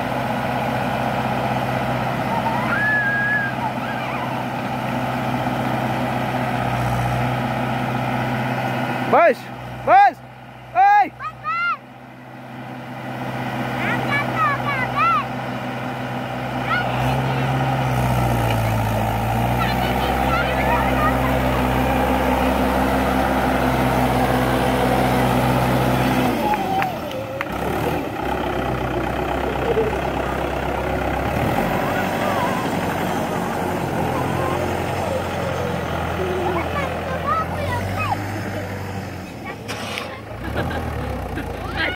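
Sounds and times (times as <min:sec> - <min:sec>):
tractor diesel engine labouring: 0:00.0 - 0:41.9
high-pitched voices calling out: 0:02.3 - 0:04.5, 0:13.8 - 0:15.4, 0:19.6 - 0:22.6, 0:31.6 - 0:40.4.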